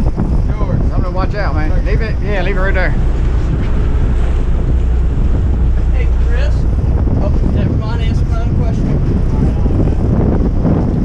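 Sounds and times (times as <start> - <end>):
boat engine drone: 0.0 - 11.0
waves washing along hull: 0.0 - 11.0
wind buffeting microphone: 0.0 - 11.0.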